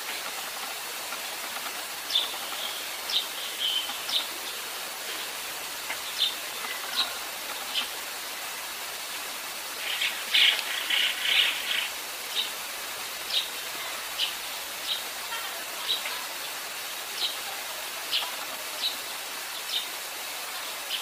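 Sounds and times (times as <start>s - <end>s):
steady hiss: 0.0s - 21.0s.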